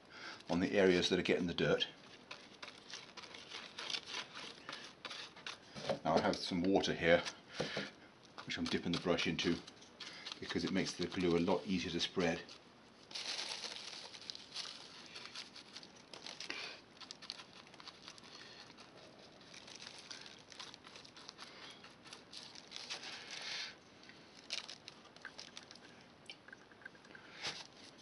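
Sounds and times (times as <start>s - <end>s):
paintbrush scrubbing glue: 2.2s - 7.2s, 8.4s - 12.5s
plastic sheeting crinkling: 11.5s - 25.9s.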